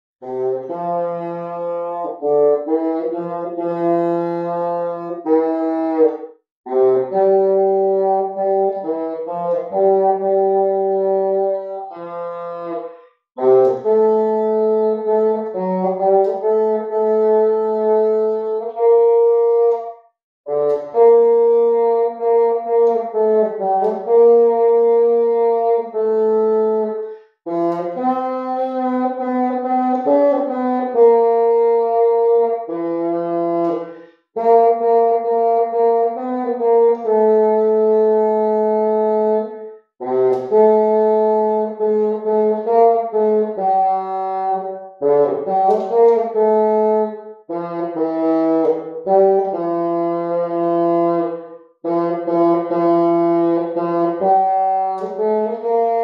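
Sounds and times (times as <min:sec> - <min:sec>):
solo bassoon melody: 0:00.2 - 0:56.0.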